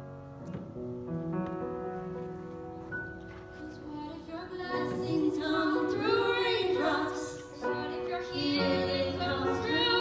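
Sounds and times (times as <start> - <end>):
grand piano: 0.0 - 10.0
women singing: 3.7 - 10.0.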